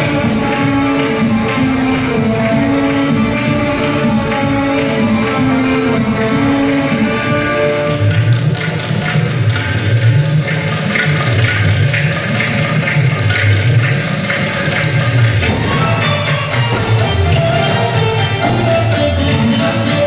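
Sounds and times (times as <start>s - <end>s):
pulsing bass line: 0.0s - 9.5s, 14.7s - 20.0s
live band playing: 0.0s - 20.0s
percussion strokes: 0.0s - 20.0s.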